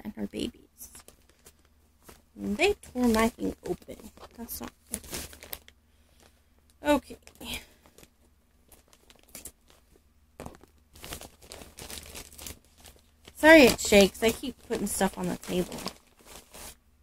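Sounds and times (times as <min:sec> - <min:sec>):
plastic packaging crinkling: 0:00.9 - 0:16.8.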